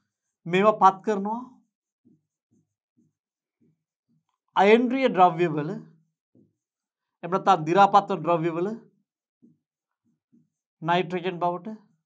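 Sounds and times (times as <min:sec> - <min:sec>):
marker writing on whiteboard: 0:00.0 - 0:12.0
man talking: 0:00.5 - 0:01.5, 0:04.6 - 0:05.8, 0:07.2 - 0:08.8, 0:10.8 - 0:11.8.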